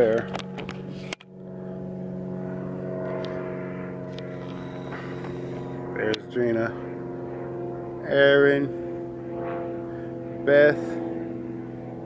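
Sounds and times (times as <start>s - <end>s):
vehicle engine idling: 0.0s - 11.8s.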